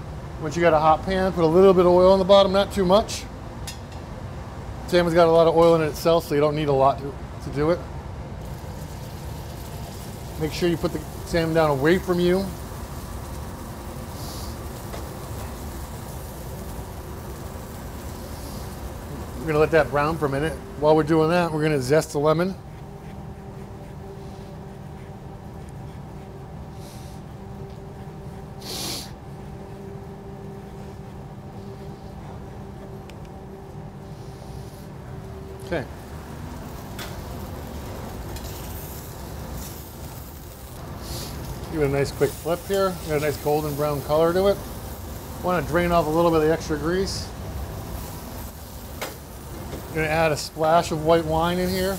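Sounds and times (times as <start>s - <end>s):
low kitchen rumble: 0.0s - 51.9s.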